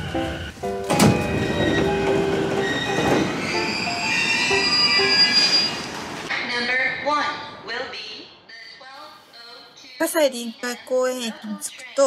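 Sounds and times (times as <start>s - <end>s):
train rumbling on rails: 0.0s - 6.3s
train wheels squealing: 1.2s - 6.3s.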